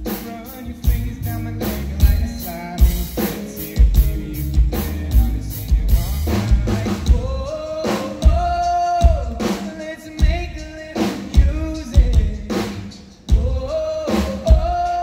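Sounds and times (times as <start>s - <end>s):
drum kit: 0.0s - 15.0s
man singing: 0.0s - 15.0s.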